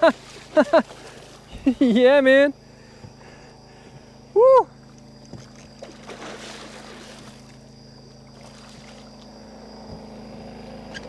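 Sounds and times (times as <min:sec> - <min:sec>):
faint splashing: 0:00.0 - 0:09.4
boat hum: 0:00.0 - 0:11.0.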